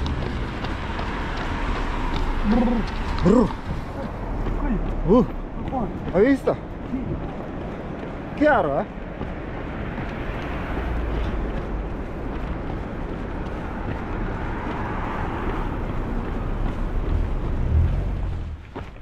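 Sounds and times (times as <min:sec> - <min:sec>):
road traffic passing: 0:00.0 - 0:19.0.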